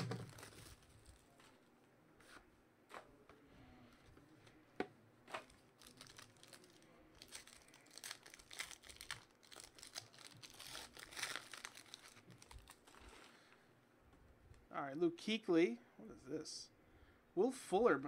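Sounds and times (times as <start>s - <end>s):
foil wrapper tearing and crinkling: 5.5s - 13.2s.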